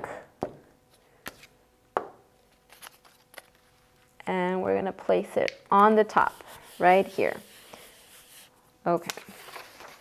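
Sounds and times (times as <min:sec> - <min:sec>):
paper card handled: 0:02.5 - 0:03.8, 0:06.3 - 0:10.0.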